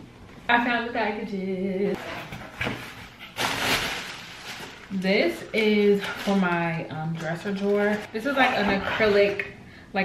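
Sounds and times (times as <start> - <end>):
plastic packing crinkling: 2.8 - 8.1.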